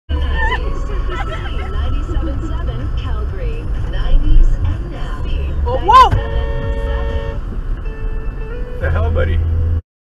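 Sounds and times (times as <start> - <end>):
car road and engine rumble: 0.1 - 9.8.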